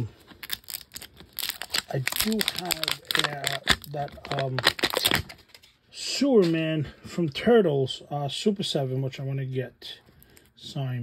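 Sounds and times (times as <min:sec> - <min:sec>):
plastic wrap crinkling and tearing: 0:00.0 - 0:05.6.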